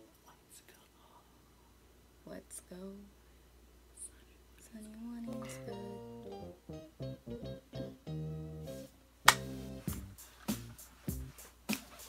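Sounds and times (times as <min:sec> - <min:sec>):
faint whisper: 0:00.0 - 0:01.8, 0:03.9 - 0:05.7.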